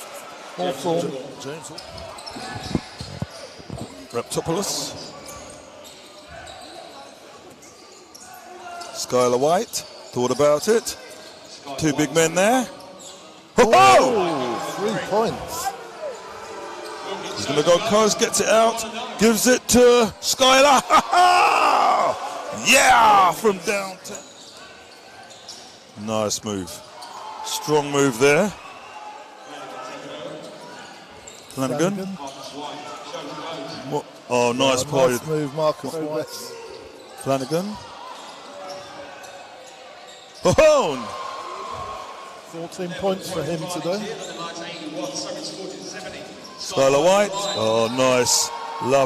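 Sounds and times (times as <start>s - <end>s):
sports hall ambience: 0.0s - 49.0s.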